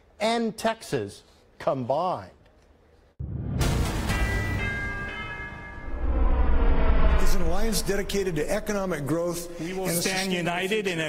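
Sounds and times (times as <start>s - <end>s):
bell-like chime tones: 4.1s - 6.5s
deep low rumble: 5.8s - 9.6s.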